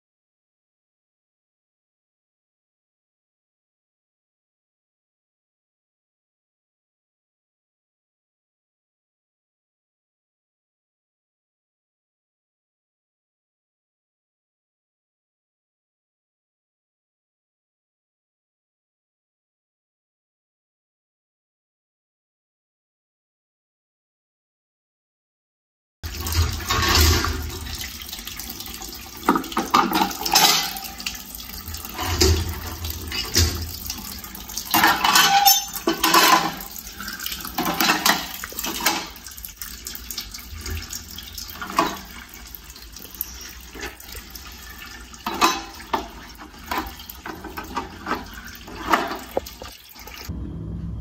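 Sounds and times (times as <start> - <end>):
tap water splashing on plastic: 45.2 - 50.3.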